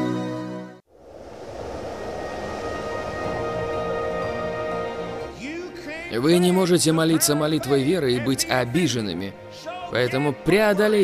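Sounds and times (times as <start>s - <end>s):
low rumble: 0.9s - 5.3s
rushing whoosh: 0.9s - 5.4s.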